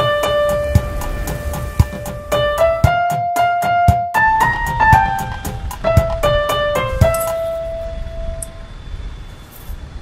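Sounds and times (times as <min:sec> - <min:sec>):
street traffic hum: 0:00.0 - 0:02.3, 0:04.9 - 0:10.0
piano note ringing: 0:00.0 - 0:08.9.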